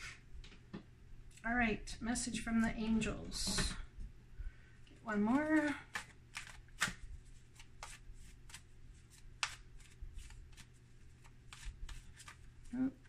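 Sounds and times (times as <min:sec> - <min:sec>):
cards being shuffled: 0:05.4 - 0:12.8.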